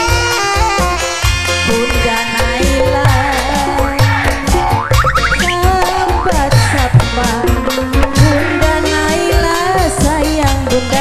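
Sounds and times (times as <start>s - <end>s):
live band music: 0.0s - 11.0s
rising run of notes: 1.6s - 8.0s
low drum beat: 1.8s - 10.5s.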